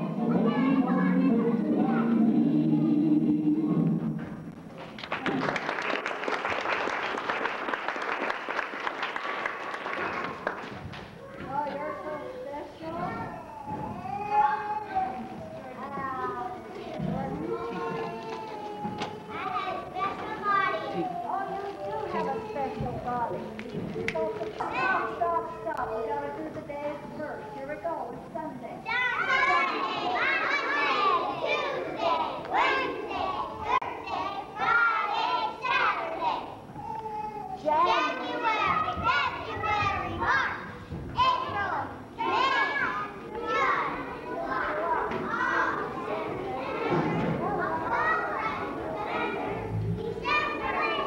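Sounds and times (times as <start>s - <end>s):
young children's high-pitched voices: 0.0s - 3.8s, 9.9s - 23.2s, 24.2s - 51.0s.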